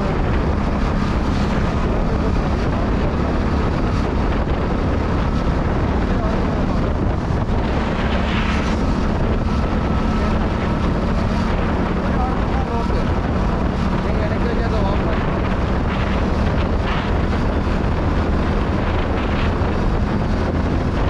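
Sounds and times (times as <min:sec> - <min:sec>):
steady engine hum: 0:00.0 - 0:21.0
wind rushing over microphone: 0:00.0 - 0:21.0.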